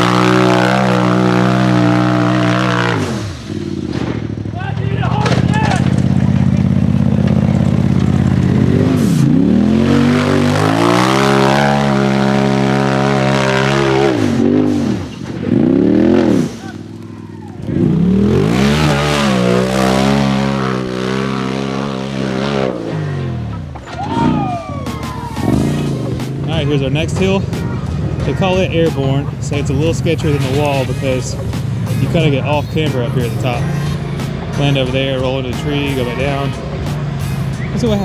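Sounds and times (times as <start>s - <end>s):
engine revving hard: 0.0s - 4.5s, 5.8s - 24.4s, 25.4s - 27.3s.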